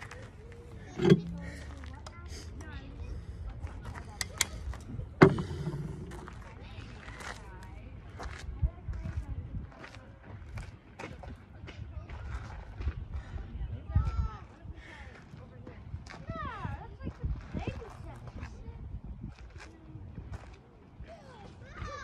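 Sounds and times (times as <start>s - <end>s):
indistinct background voices: 0.0s - 13.8s
low steady rumble: 0.3s - 9.5s
sharp knocks: 5.2s - 6.3s.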